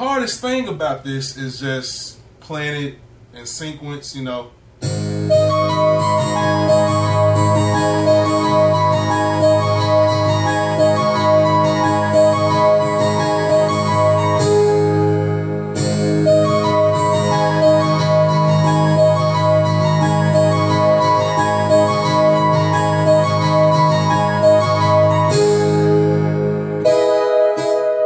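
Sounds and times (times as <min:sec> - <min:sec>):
digital piano playing chords: 0:04.8 - 0:28.0.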